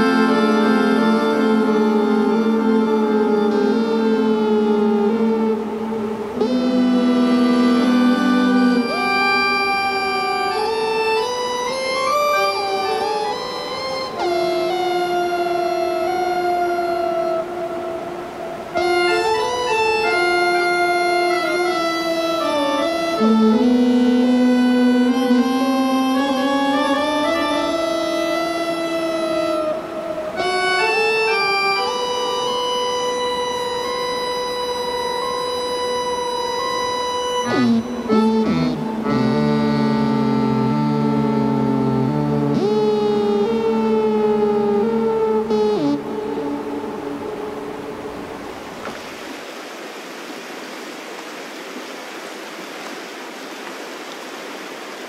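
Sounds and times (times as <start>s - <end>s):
keyboard harmonica chords: 0.0s - 48.3s.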